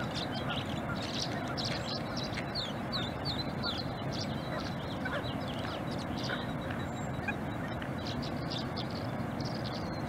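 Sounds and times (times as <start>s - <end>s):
low background rush: 0.0s - 10.0s
swallows twittering: 0.0s - 10.0s.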